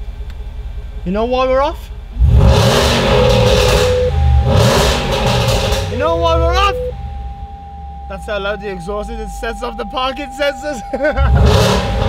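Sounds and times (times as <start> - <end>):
car engine revving loudly: 2.2 - 8.4, 11.2 - 12.0
parking sensor tone: 2.5 - 12.0.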